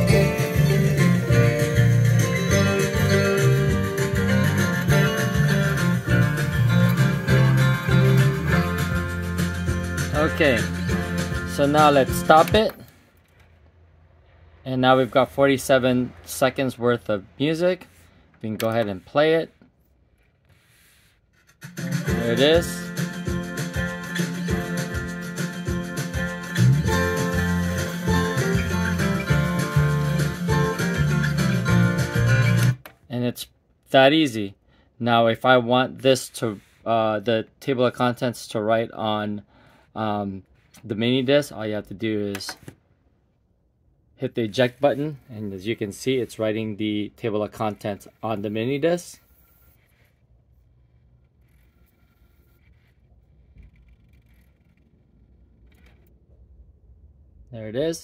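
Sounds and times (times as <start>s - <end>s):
music playback: 0.0s - 12.7s, 21.6s - 32.8s.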